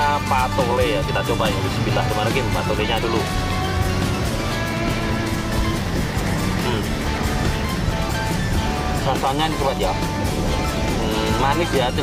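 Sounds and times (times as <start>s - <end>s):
music with held notes: 0.0s - 12.0s.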